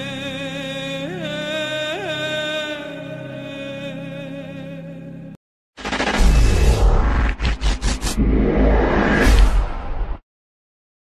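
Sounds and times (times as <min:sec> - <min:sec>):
short stuttering bursts: 0:05.8 - 0:08.4
hissing sweep: 0:05.8 - 0:10.2.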